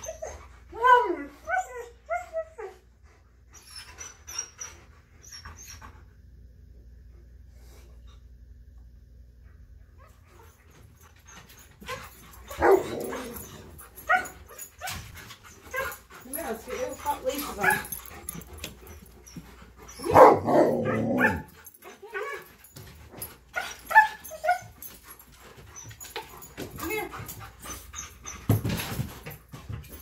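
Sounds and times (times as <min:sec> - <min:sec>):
dogs whining yipping and barking: 0:00.0 - 0:06.0, 0:10.0 - 0:30.0.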